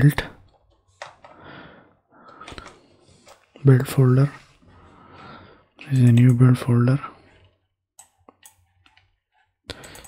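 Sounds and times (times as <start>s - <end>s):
computer mouse clicks: 5.8s - 6.5s, 8.0s - 10.0s.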